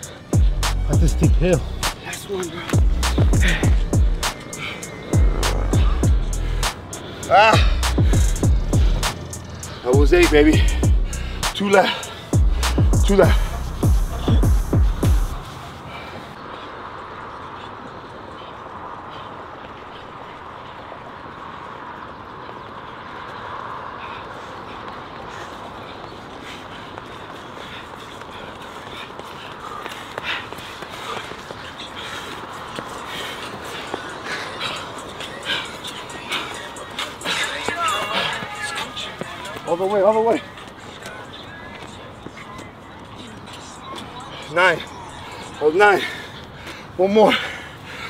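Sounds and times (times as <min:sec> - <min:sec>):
running footfalls on dirt trail: 0:00.0 - 0:48.0.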